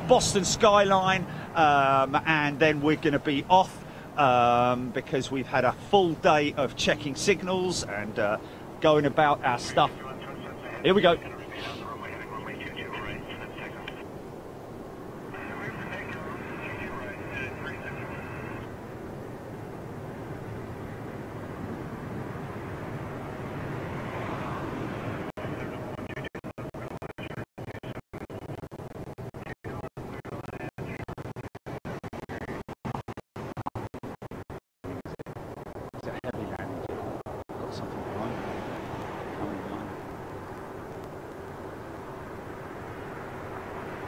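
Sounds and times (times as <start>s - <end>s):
air traffic control radio voices: 0.0s - 14.2s, 15.1s - 19.0s, 24.4s - 28.0s, 29.3s - 33.9s, 34.8s - 44.0s
jet airliner takeoff roll: 0.0s - 26.2s.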